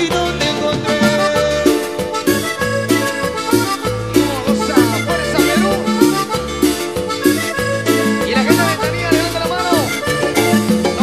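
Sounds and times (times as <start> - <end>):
cumbia band playing: 0.0 - 11.0
sliding lead melody: 0.0 - 11.0.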